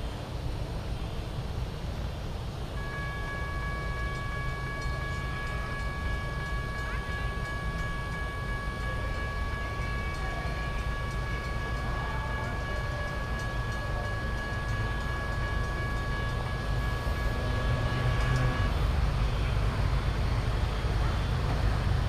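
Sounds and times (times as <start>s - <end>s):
diesel locomotive rumble: 0.0s - 22.0s
thin steady high tone: 2.7s - 21.1s.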